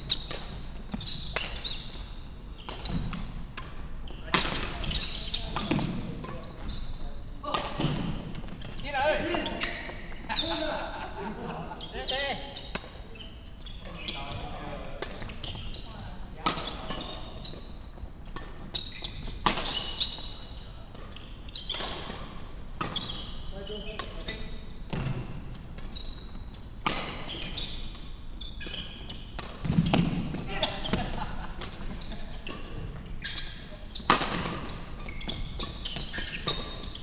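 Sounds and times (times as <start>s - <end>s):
shoes squeaking on wooden floor: 0.0s - 3.2s, 4.1s - 7.2s, 7.8s - 10.8s, 11.6s - 22.1s, 23.0s - 31.2s, 31.8s - 37.0s.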